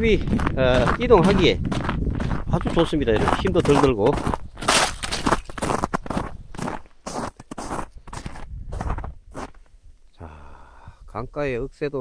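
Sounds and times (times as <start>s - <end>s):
footsteps crunching on ice and snow: 0.0s - 9.7s.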